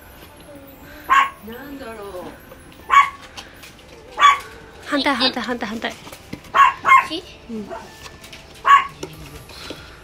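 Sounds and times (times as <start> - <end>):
small dog barking: 1.1 - 1.4, 2.9 - 3.2, 4.2 - 4.5, 6.5 - 7.9, 8.6 - 9.0.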